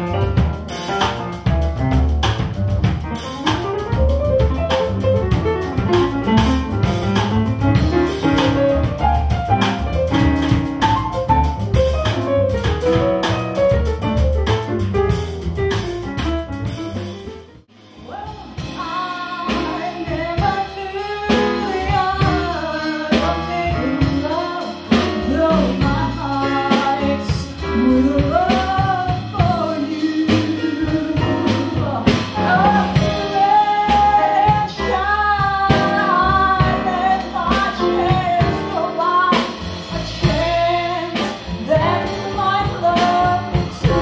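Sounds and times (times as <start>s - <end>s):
woman singing jazz: 0.0s - 14.8s, 17.9s - 44.0s
double bass: 0.0s - 44.0s
drum kit and cymbals: 0.0s - 44.0s
piano: 0.0s - 44.0s.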